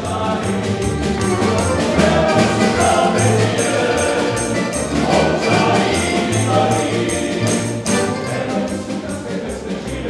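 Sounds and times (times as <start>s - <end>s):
accompaniment with steady beat: 0.0s - 10.0s
male ensemble singing in harmony: 0.0s - 10.0s.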